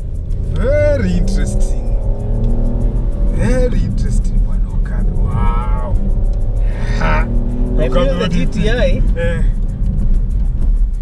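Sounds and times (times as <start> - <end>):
engine and road rumble: 0.0 - 11.0
background music: 5.0 - 11.0.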